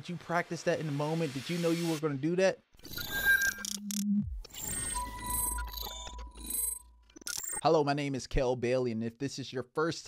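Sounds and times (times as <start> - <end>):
crackly high glitch noises: 2.8 - 7.6.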